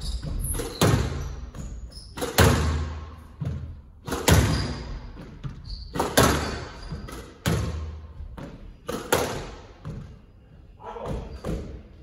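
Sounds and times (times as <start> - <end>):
squash ball knocks and thuds: 0.0 - 10.3, 10.9 - 12.0.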